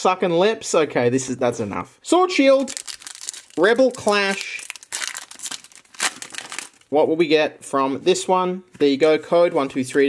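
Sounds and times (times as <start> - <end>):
foil wrapper tearing and crinkling: 2.6 - 6.9.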